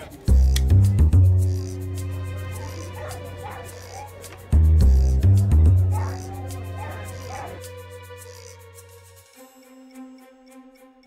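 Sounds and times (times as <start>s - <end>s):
background music: 0.0s - 11.0s
dog whining: 2.5s - 4.2s, 5.9s - 7.6s.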